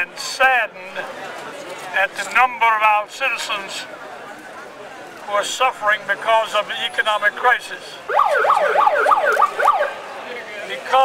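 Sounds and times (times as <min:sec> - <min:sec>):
electronic siren yelping: 0:08.1 - 0:10.0
people speaking: 0:10.1 - 0:11.0.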